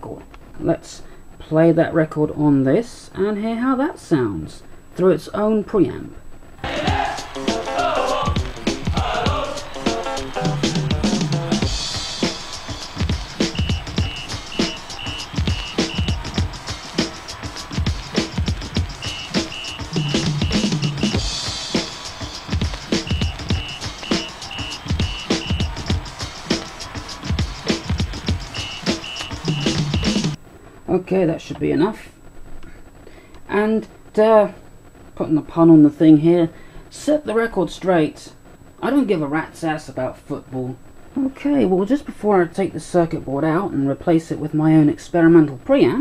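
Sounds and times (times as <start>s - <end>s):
music with beat and vocals: 6.6s - 30.4s
short high beeps: 13.5s - 16.2s, 19.0s - 21.2s, 23.0s - 25.8s, 28.5s - 30.3s.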